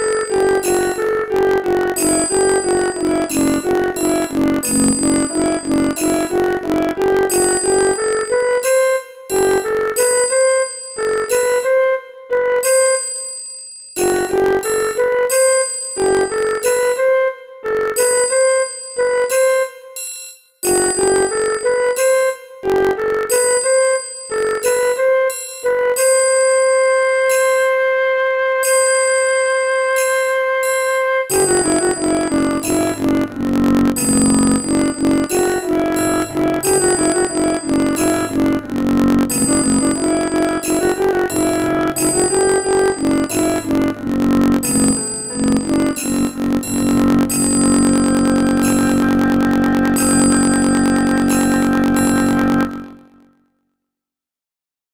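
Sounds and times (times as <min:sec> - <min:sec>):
synthesized flute long note: 0:00.0 - 0:13.2, 0:14.0 - 0:19.8, 0:20.8 - 0:53.3.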